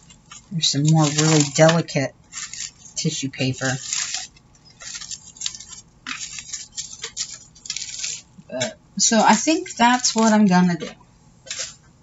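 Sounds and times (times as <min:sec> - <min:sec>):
paper bag rustling and crinkling: 0:00.0 - 0:08.4, 0:09.0 - 0:11.8.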